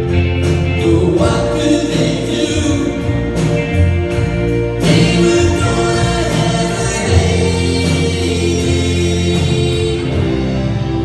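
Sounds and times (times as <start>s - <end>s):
live pop-rock band playing: 0.0s - 11.0s
voices singing in harmony: 4.8s - 11.0s.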